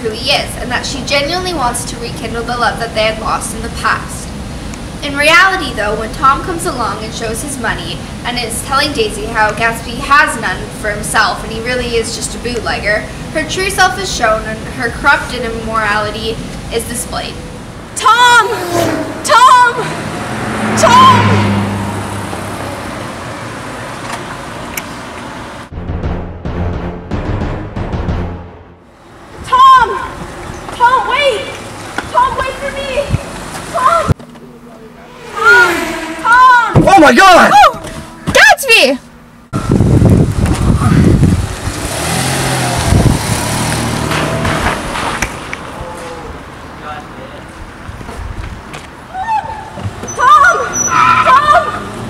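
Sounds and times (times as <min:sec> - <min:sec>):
woman shouting: 0:18.0 - 0:20.0, 0:20.7 - 0:21.5, 0:29.4 - 0:34.2, 0:35.3 - 0:39.0, 0:49.1 - 0:51.9
car driving past: 0:18.2 - 0:24.0, 0:34.6 - 0:38.2, 0:41.5 - 0:46.6.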